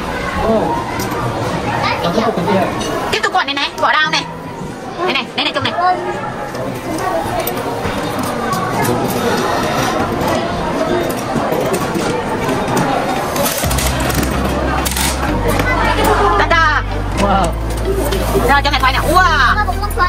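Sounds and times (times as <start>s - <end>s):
voices chattering indoors: 0.0s - 20.0s
background music with bass: 13.6s - 20.0s.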